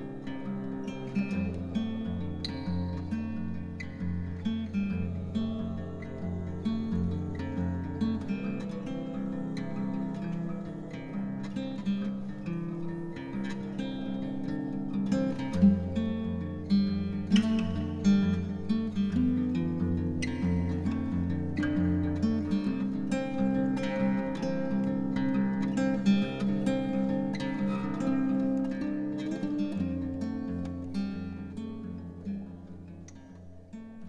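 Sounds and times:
low sustained tone: 0:00.0 - 0:33.8
fingerpicked acoustic guitar: 0:00.0 - 0:34.0.

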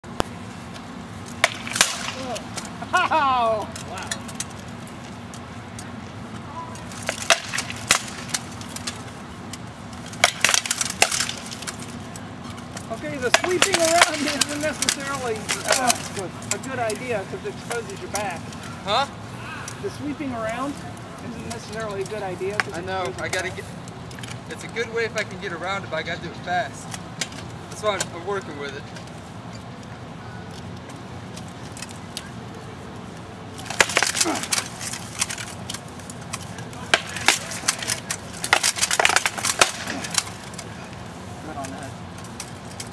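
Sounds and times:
rattan swords clacking: 0:01.2 - 0:02.9, 0:06.6 - 0:18.7, 0:33.6 - 0:40.9.

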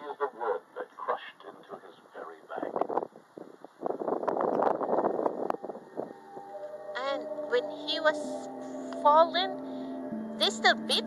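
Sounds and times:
rustling crackly noise: 0:01.2 - 0:06.7
soft background music: 0:04.6 - 0:11.0.

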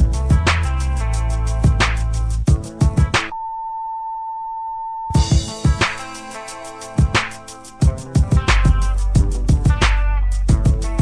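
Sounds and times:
hip hop music: 0:00.0 - 0:03.3, 0:05.2 - 0:11.0
censor bleep: 0:03.3 - 0:05.3.

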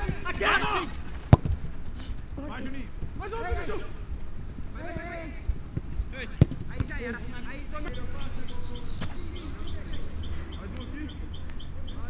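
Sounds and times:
players shouting: 0:00.0 - 0:01.4, 0:02.4 - 0:11.2
football kicked with a thud: 0:01.3 - 0:01.6, 0:05.8 - 0:06.9.

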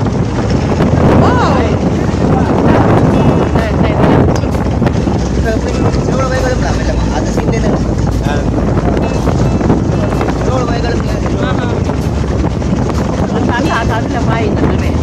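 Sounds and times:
boat engine rumble: 0:00.0 - 0:15.0
water: 0:00.0 - 0:15.0
wind buffeting microphone: 0:00.0 - 0:15.0
faint voices: 0:01.1 - 0:15.0.

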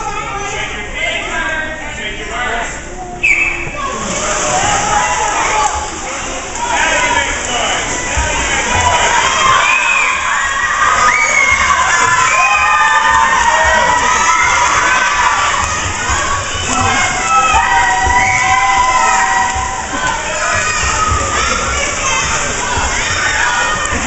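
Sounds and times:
children shouting and cheering: 0:08.0 - 0:24.0.

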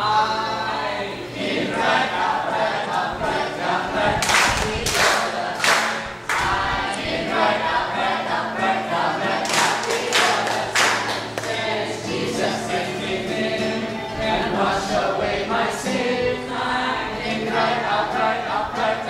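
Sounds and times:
group singing in unison: 0:00.0 - 0:19.0
hand claps: 0:04.2 - 0:06.5, 0:09.4 - 0:11.6.

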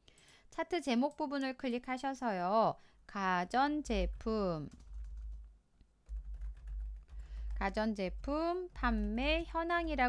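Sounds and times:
computer keyboard keystrokes: 0:04.2 - 0:08.3.

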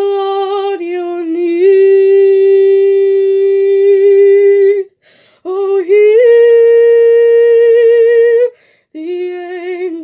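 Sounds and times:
woman singing a cappella: 0:00.0 - 0:10.0.

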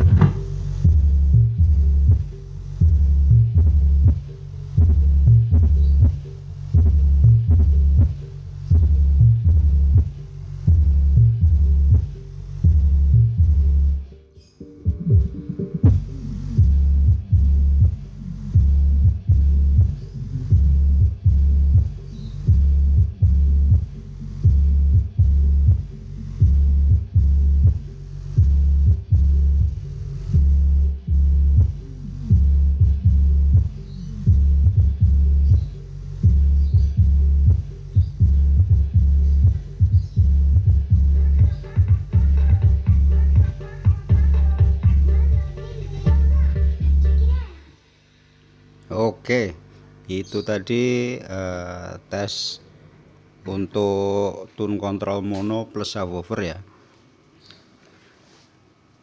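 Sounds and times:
deep throbbing bass beats: 0:00.0 - 0:47.5.

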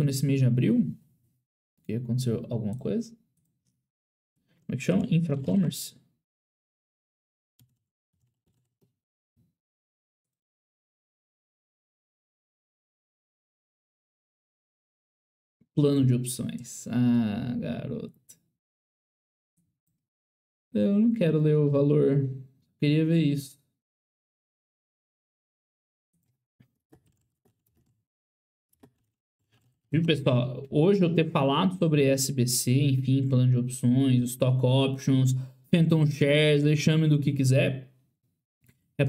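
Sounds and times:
faint keyboard typing: 0:07.6 - 0:08.9, 0:26.2 - 0:28.0, 0:28.8 - 0:29.8.

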